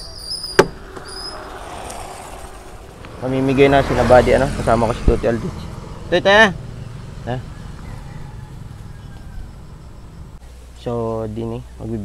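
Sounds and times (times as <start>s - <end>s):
motorcycle engine idling: 4.4s - 10.4s.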